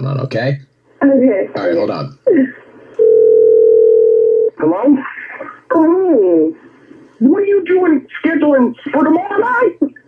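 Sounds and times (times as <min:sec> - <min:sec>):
telephone dial tone: 0:03.0 - 0:04.5.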